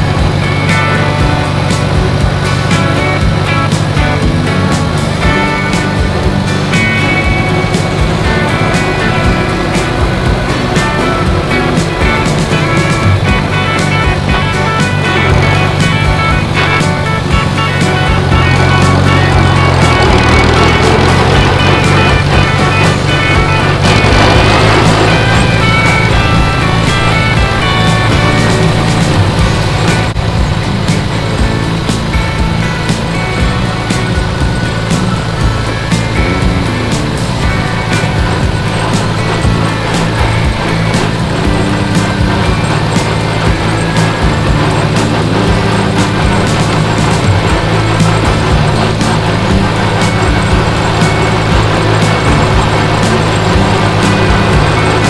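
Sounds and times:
background music: 0:00.0 - 0:55.0
tractor engine running: 0:00.0 - 0:55.0.

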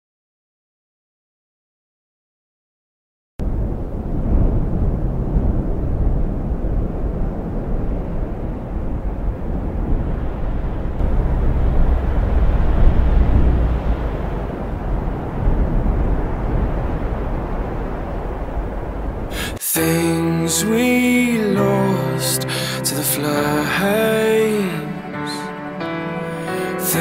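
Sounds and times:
wind on microphone: 0:03.4 - 0:21.8.

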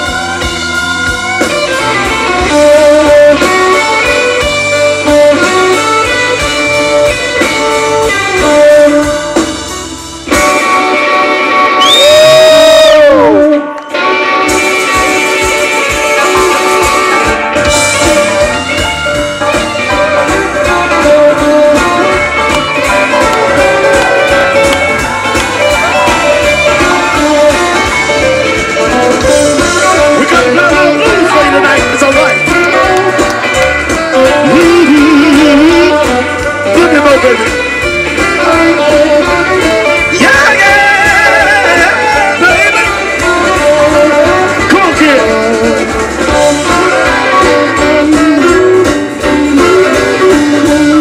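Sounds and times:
blues band playing: 0:00.0 - 0:51.0
electric guitar: 0:00.0 - 0:51.0.

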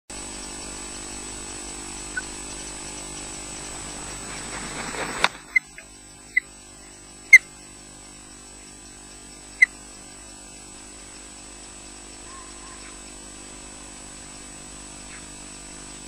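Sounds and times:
steady camera hum: 0:00.2 - 0:16.0
osprey high chirps: 0:00.5 - 0:04.2, 0:05.4 - 0:15.8
osprey wings rushing: 0:02.3 - 0:05.8.

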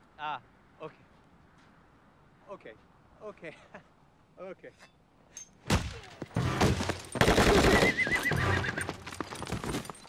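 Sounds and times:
horse whinnying: 0:07.4 - 0:09.2.

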